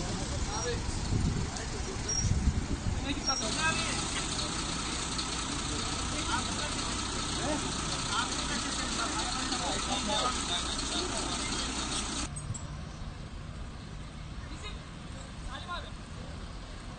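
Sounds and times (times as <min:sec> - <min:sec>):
vehicle engine idling: 0:00.0 - 0:12.3.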